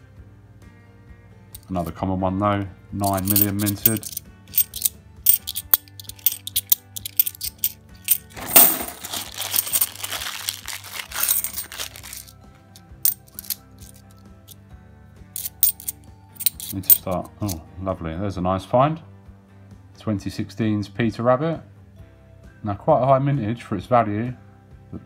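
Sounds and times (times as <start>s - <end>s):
coins clinking in the hand: 1.6s - 1.8s, 3.0s - 14.6s, 15.4s - 17.6s
plastic coin bag rustling: 3.0s - 12.4s, 13.1s - 14.0s, 15.4s - 17.2s.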